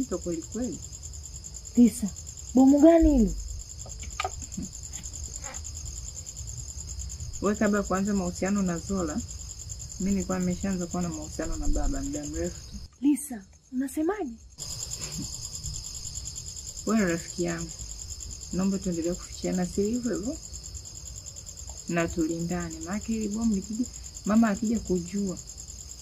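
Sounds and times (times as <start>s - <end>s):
crickets chirping: 0.0s - 26.0s
person speaking: 1.8s - 3.4s.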